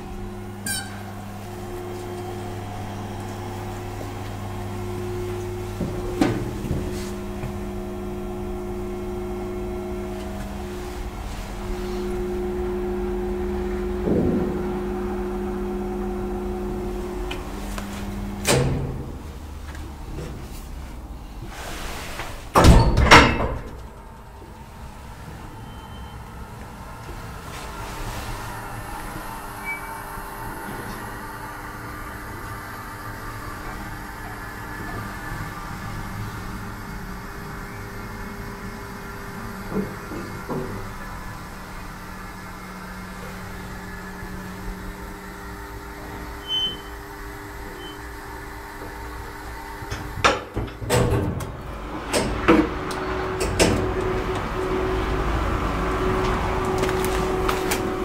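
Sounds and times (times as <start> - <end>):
platform lift humming: 0.0 - 58.0.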